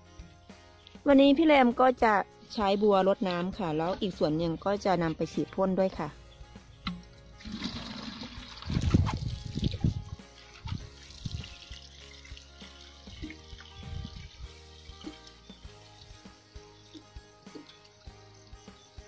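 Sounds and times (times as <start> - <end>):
quiet background music: 0.0 - 19.0
water splashing from watering can: 7.4 - 19.0.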